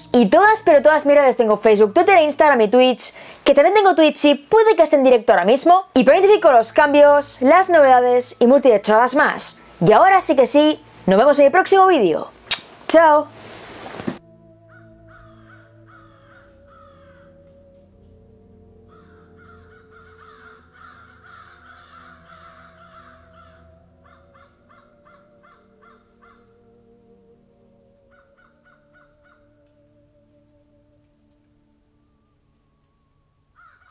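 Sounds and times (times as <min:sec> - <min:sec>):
low musical drone: 0:06.1 - 0:12.4, 0:14.2 - 0:33.6
harsh bird calls: 0:14.7 - 0:17.3, 0:18.9 - 0:26.4.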